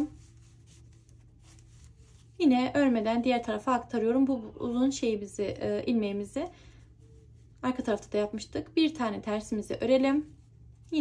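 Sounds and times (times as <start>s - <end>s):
knitting needles scratching yarn: 0.0s - 3.6s.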